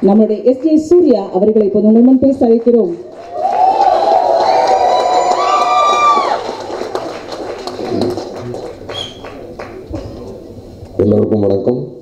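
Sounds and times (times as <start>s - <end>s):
scattered clapping: 2.6s - 10.2s
audience cheering and whistling: 3.2s - 7.0s, 8.9s - 9.4s
crowd murmur: 6.1s - 10.8s.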